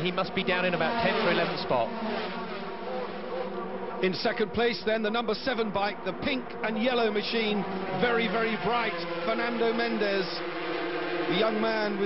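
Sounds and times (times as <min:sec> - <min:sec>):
racing motorcycles engines: 0:00.0 - 0:12.0.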